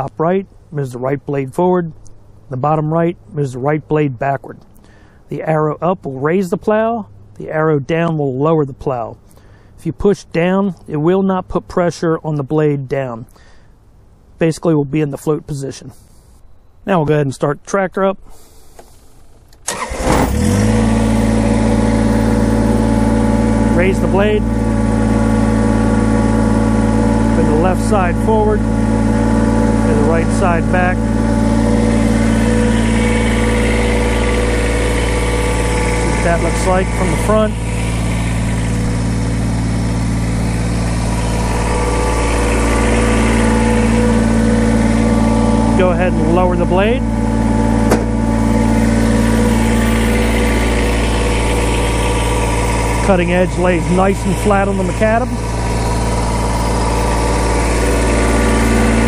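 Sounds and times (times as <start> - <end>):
tractor diesel engine idling: 18.4 - 59.0.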